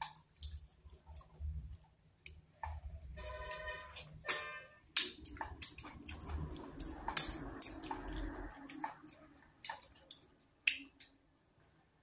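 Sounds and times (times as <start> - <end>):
wet chewing sounds: 0.0 - 11.2
fingers squishing thick soup: 0.0 - 11.7.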